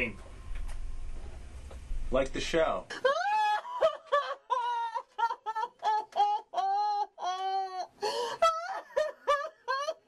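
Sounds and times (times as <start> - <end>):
woman wailing and sobbing: 2.9 - 10.0.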